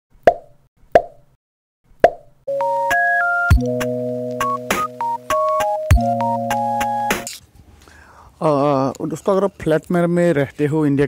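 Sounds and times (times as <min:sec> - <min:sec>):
electronic keyboard jingle: 0:02.5 - 0:07.3.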